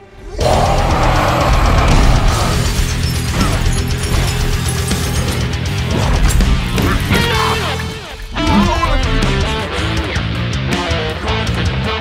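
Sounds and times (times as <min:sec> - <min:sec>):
distorted electric guitar riffing: 0:06.6 - 0:12.0.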